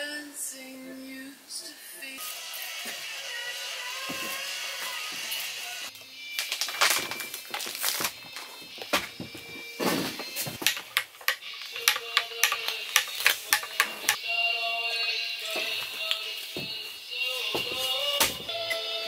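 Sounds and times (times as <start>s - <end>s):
background music: 3.2s - 19.0s
metal spoon clinking against mugs: 10.6s - 14.2s.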